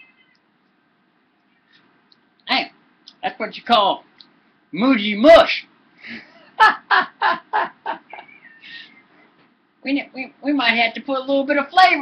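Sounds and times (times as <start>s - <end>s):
man laughing: 6.1s - 8.9s.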